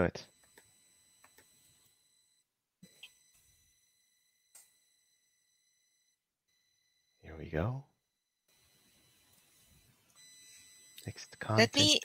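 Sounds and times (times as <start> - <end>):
high-pitched electronic tones: 10.2 - 12.0.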